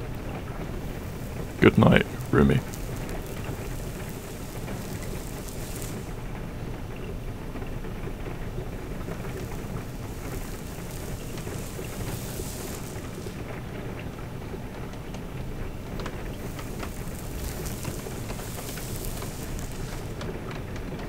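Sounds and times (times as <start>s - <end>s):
steady rain: 0.0s - 21.0s
sharp ticks: 0.8s - 6.2s.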